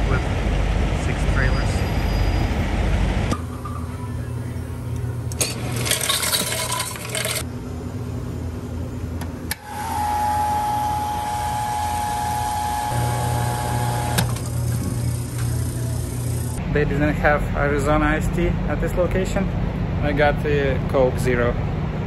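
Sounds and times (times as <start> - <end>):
machine low hum: 3.0 - 20.1
steady high whine: 7.4 - 21.5.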